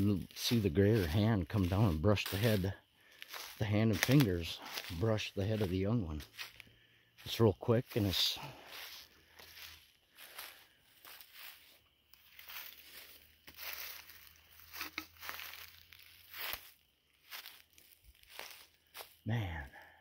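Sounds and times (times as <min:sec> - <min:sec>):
footsteps crunching through dry leaves: 0:00.0 - 0:19.9.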